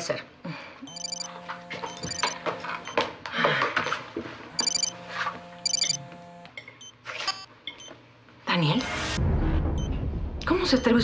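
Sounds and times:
mobile phone ringtone trills: 0.9 - 2.4, 4.6 - 5.0, 5.6 - 6.1.

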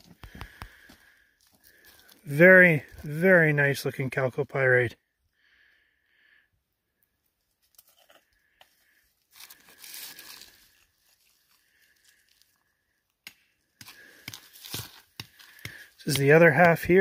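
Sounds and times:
rock crunching on gravel: 13.8 - 17.0.

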